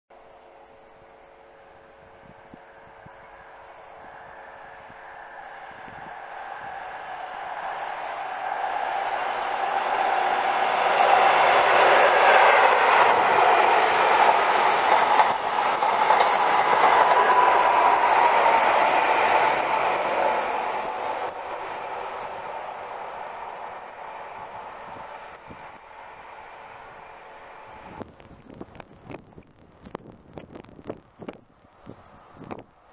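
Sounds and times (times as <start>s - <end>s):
diesel train passing: 0.1s - 32.9s.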